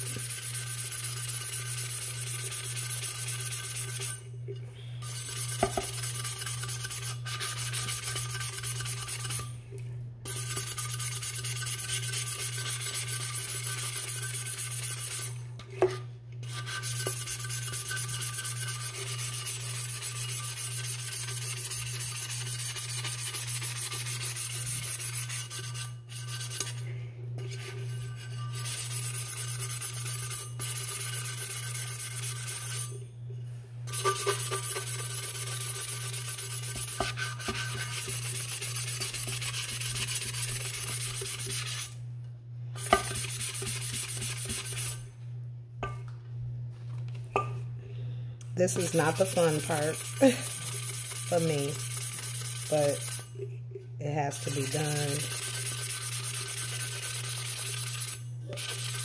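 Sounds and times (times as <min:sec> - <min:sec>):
sanding block rasping on metal: 0:00.0 - 0:04.2, 0:05.0 - 0:09.5, 0:10.3 - 0:15.3, 0:16.4 - 0:26.8, 0:27.6 - 0:32.8, 0:33.9 - 0:42.0, 0:42.8 - 0:45.0, 0:48.8 - 0:53.3, 0:54.4 - 0:59.0.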